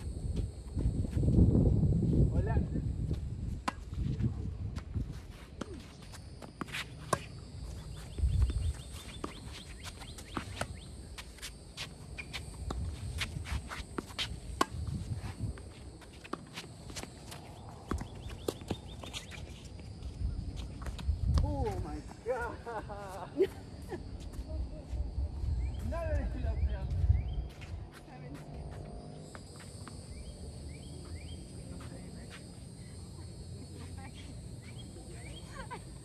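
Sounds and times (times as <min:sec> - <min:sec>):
wind rumble on microphone: 0:00.0 - 0:05.5, 0:07.9 - 0:09.5, 0:12.5 - 0:13.7, 0:14.3 - 0:16.0, 0:19.8 - 0:22.2, 0:24.4 - 0:28.8.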